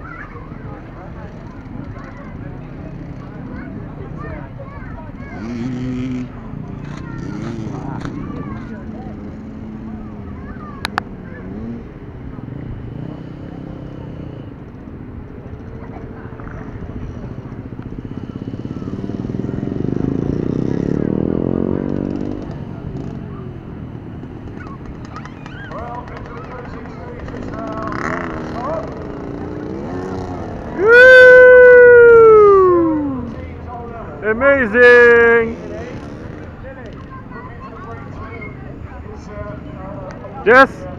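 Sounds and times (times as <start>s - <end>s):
children's chatter: 0.0s - 34.1s, 35.6s - 40.3s.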